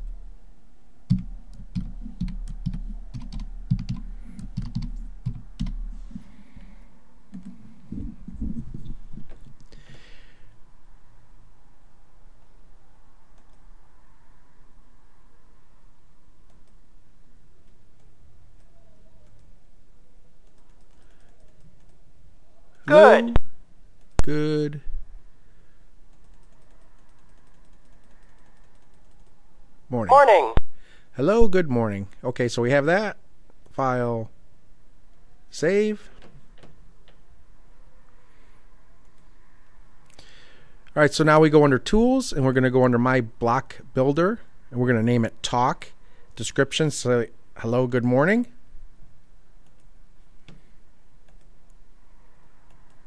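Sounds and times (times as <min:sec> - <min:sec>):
computer mouse clicking: 0:01.1 - 0:05.8, 0:07.3 - 0:07.6, 0:13.4 - 0:13.6, 0:16.5 - 0:16.8, 0:17.6 - 0:19.5, 0:20.4 - 0:22.0, 0:26.1 - 0:29.4, 0:39.0 - 0:39.3, 0:49.6 - 0:50.6, 0:51.2 - 0:51.8, 0:52.7 - 0:53.0
typing on keyboard: 0:01.1 - 0:05.8, 0:07.3 - 0:07.6, 0:20.4 - 0:22.0, 0:26.1 - 0:29.4.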